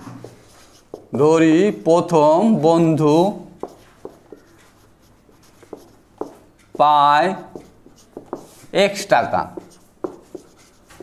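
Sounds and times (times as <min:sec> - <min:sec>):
marker pen on whiteboard: 0:00.0 - 0:11.0
man talking: 0:01.1 - 0:03.6, 0:06.8 - 0:07.6, 0:08.7 - 0:09.7.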